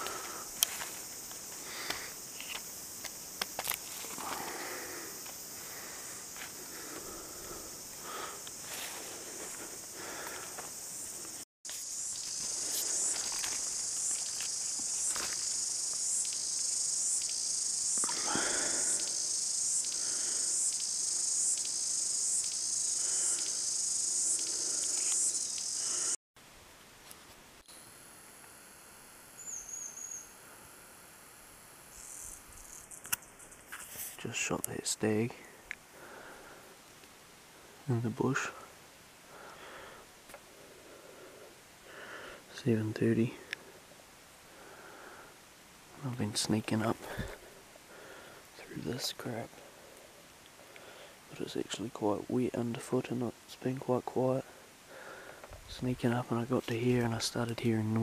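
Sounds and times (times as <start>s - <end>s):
insect chorus shrilling: 0.0s - 26.2s, 29.3s - 36.9s
rustles and knocks in undergrowth: 0.6s - 4.5s, 10.4s - 15.6s.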